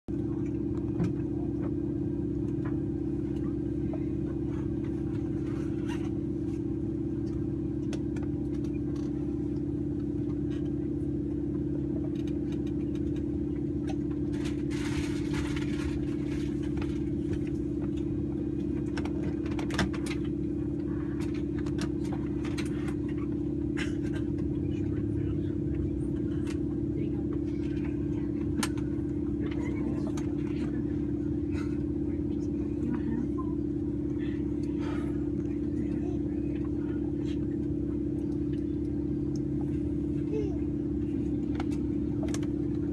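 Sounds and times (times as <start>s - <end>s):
machine hum with low tone: 0.1s - 42.9s.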